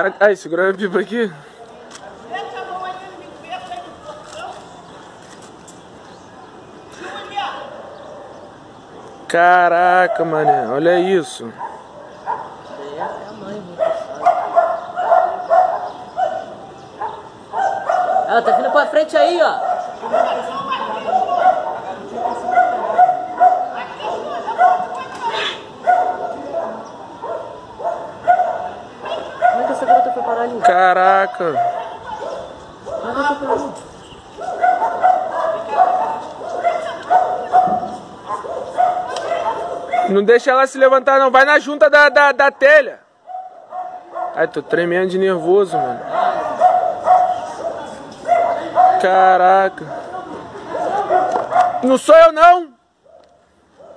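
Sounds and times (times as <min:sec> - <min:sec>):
dog barking: 0:10.0 - 0:33.8, 0:34.4 - 0:40.2, 0:43.2 - 0:44.5, 0:45.7 - 0:52.0, 0:53.0 - 0:53.9.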